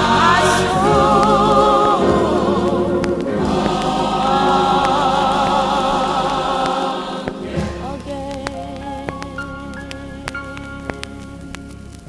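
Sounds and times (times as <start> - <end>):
gospel choir singing: 0.0 - 11.5
vinyl record clicks: 0.0 - 12.0.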